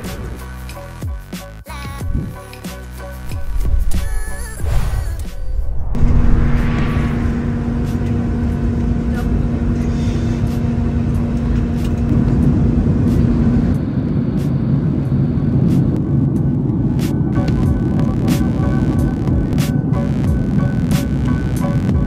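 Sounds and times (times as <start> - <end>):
jet engine cabin rumble: 3.2 - 22.0.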